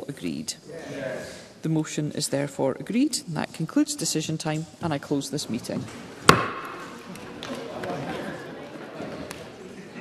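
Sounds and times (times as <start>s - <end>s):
wooden gavel knock: 6.3s - 6.8s.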